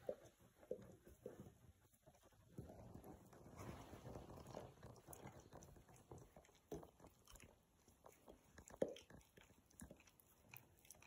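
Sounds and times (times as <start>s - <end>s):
dogs mouthing: 4.4s - 11.0s.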